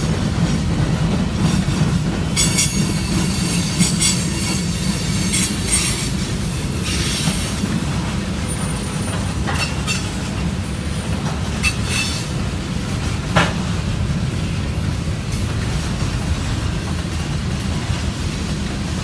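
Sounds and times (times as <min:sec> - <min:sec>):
train wheels rumbling on rail: 0:00.0 - 0:19.0.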